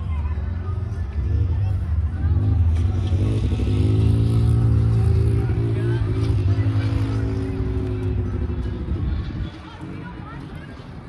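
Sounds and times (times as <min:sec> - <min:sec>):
off-road vehicle driving past: 0:00.2 - 0:09.4.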